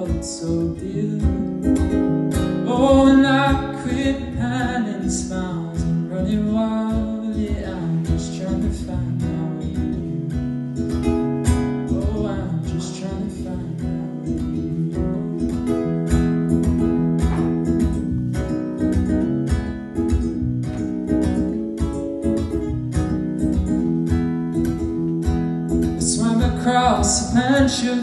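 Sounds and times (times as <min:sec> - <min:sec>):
acoustic guitar strumming: 0:00.0 - 0:28.0.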